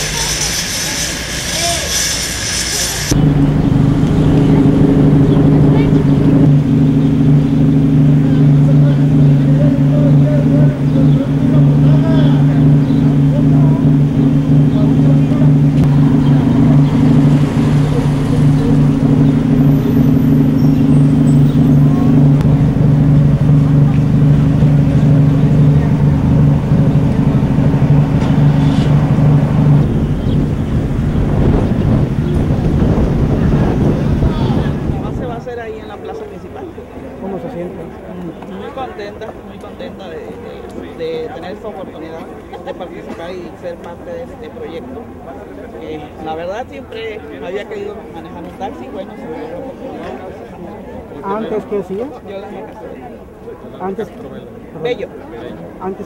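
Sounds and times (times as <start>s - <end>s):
vehicle engine idling: 0.0s - 47.8s.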